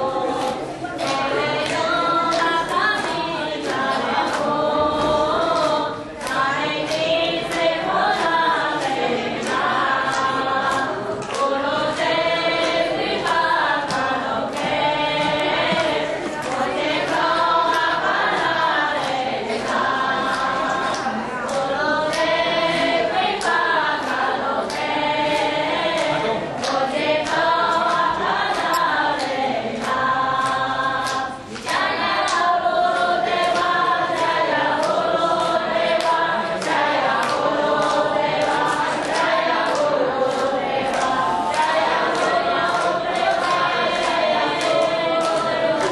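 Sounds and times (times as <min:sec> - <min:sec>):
group singing a devotional chant: 0:00.0 - 0:45.9
sharp rhythmic strikes: 0:00.0 - 0:45.9.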